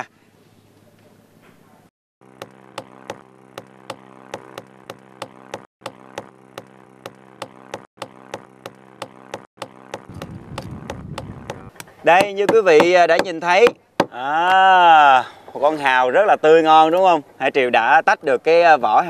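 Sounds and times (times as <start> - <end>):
steady low hum: 0.1 - 14.1.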